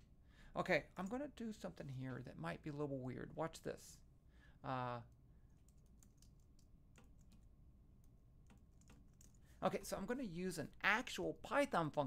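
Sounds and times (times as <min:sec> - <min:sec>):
faint keyboard typing: 0:05.0 - 0:09.6.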